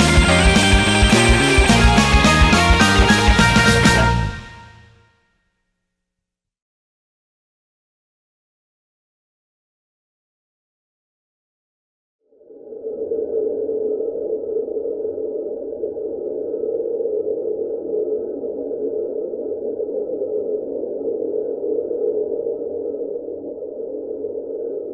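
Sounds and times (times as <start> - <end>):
steady ambient drone: 0.0 - 4.9.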